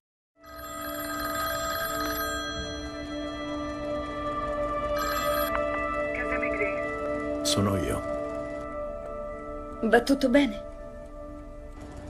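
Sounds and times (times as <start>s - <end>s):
telephone bell ringing: 0.4s - 5.6s.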